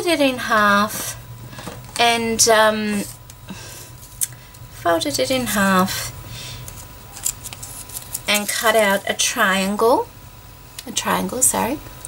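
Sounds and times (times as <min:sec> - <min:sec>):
paper rustling: 0:06.7 - 0:09.0.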